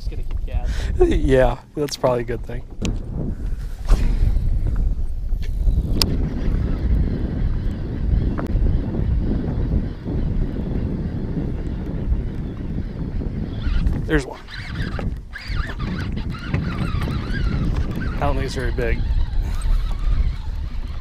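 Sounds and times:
wind buffeting microphone: 0.0 - 21.0.

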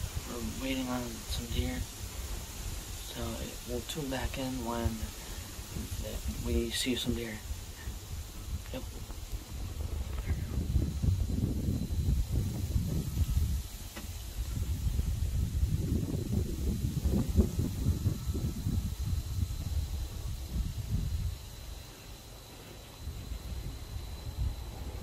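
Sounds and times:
low rumbling on microphone: 0.0 - 25.0.

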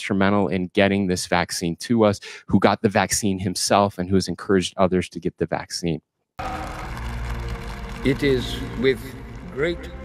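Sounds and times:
low held film music: 6.4 - 10.0.

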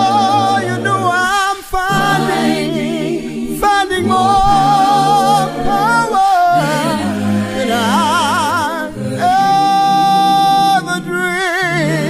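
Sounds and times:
a cappella gospel singing: 0.0 - 12.0.

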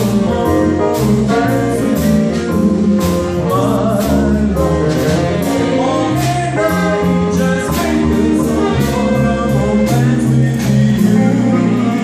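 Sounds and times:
double bass: 0.0 - 12.0
drums and cymbals: 0.0 - 12.0
guitar: 0.0 - 12.0
man singing: 0.0 - 12.0
saxophone: 0.0 - 12.0.

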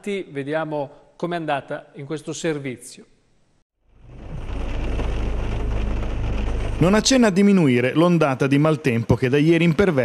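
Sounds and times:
rain on car windscreen: 3.9 - 7.4
man speaking: 6.8 - 10.0.

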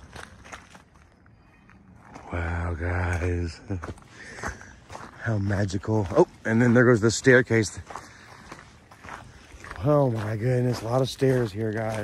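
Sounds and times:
footsteps on gravel: 0.0 - 12.0
man's voice: 2.2 - 3.9, 5.2 - 7.9, 9.7 - 12.0.

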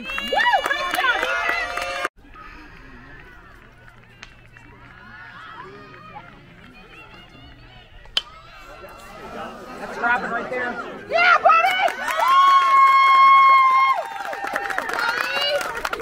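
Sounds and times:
spectators cheering: 0.0 - 16.0
scattered voices from stands: 2.2 - 11.8.

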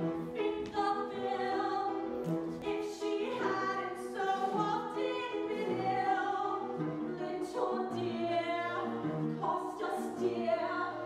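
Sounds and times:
musical theatre singing: 0.0 - 11.0.

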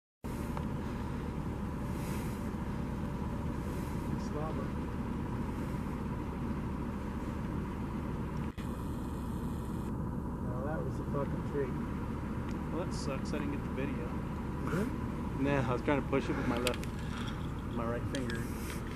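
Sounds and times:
vehicle engine idling: 0.2 - 18.9.

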